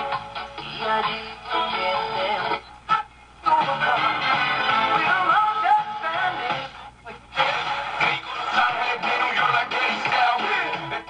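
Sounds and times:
music from radio speaker: 0.0 - 11.0.

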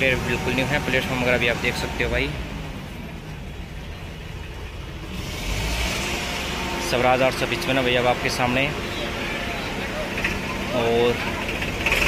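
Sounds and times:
low vehicle rumble: 0.0 - 12.0.

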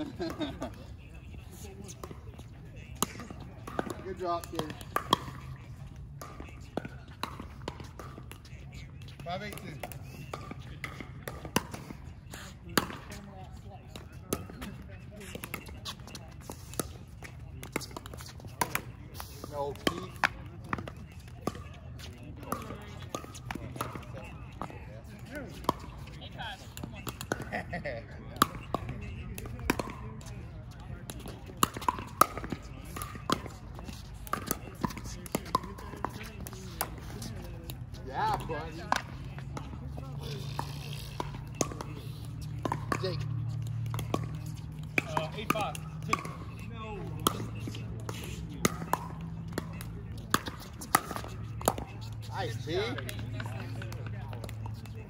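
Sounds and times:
paddles hitting plastic ball: 3.0 - 8.4, 31.0 - 39.8, 40.6 - 54.8.

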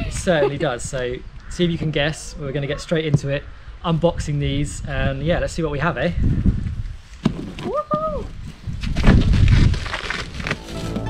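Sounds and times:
plastic crinkling: 9.2 - 11.0.

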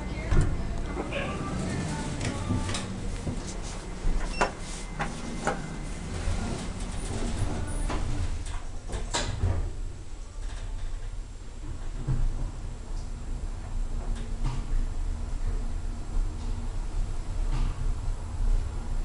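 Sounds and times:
background voices: 0.0 - 3.8
elevator humming: 0.0 - 11.9.

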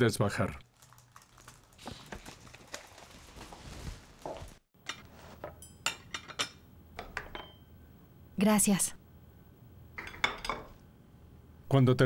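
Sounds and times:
plates and cutlery clinking: 4.8 - 7.6, 10.0 - 10.8.

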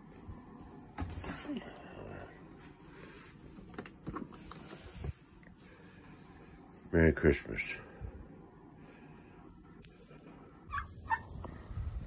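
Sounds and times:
turkey calls: 10.7 - 11.3
wind rumble on microphone: 10.8 - 12.0.

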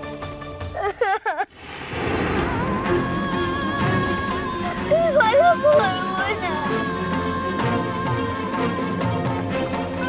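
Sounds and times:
dramatic background music: 1.9 - 10.0.

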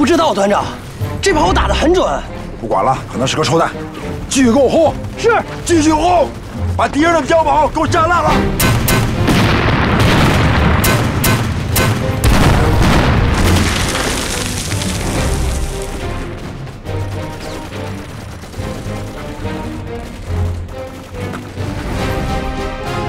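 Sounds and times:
dramatic music with low notes: 0.0 - 23.0
mortar shells exploding: 8.6 - 16.2.

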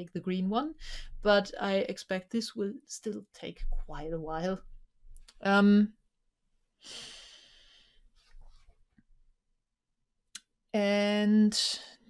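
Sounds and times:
breath close to microphone: 0.8 - 1.2, 6.8 - 8.2.

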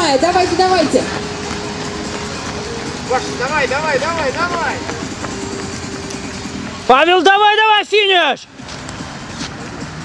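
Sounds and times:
footfalls on a wet road: 1.0 - 6.8.

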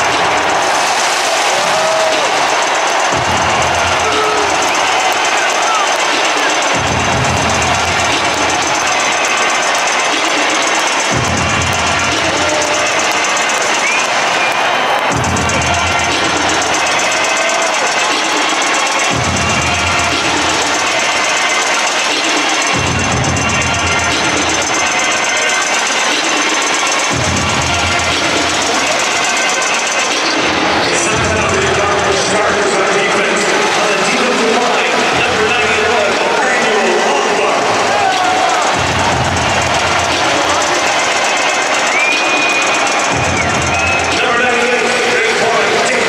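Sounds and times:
public-address music: 0.0 - 46.0
stadium crowd noise: 0.0 - 46.0.

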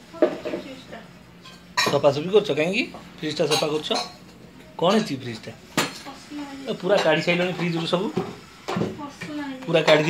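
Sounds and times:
dishes clattering: 1.4 - 2.2, 3.3 - 6.1, 6.9 - 10.0.

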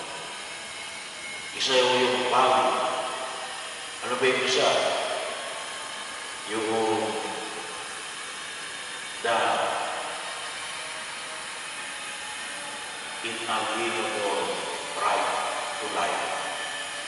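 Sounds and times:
man speaking into microphone: 1.6 - 3.0, 4.0 - 5.1, 9.2 - 9.9, 13.2 - 16.4.

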